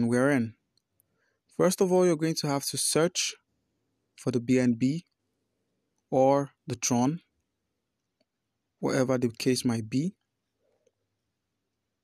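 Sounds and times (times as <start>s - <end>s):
man speaking: 0.0s - 0.6s, 1.5s - 3.5s, 4.1s - 5.2s, 6.1s - 7.3s, 8.8s - 10.2s.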